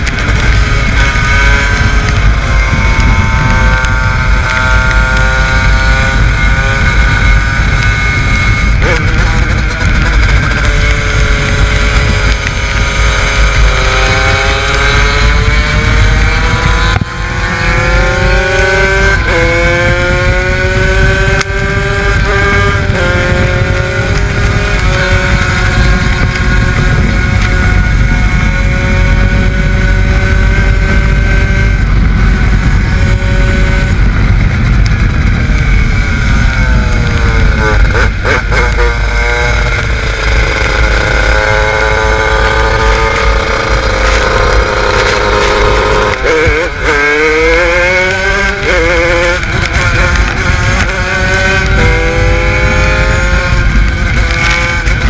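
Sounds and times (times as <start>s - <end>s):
kart engine revving: 0.0s - 55.0s.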